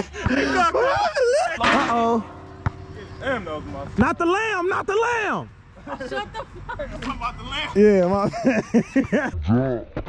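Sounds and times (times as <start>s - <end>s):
men laughing: 0.0s - 1.8s, 5.8s - 9.4s.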